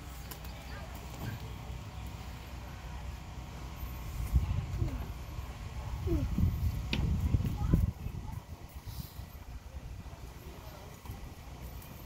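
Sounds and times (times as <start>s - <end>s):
wind rumble on microphone: 4.1s - 5.2s, 5.8s - 10.2s.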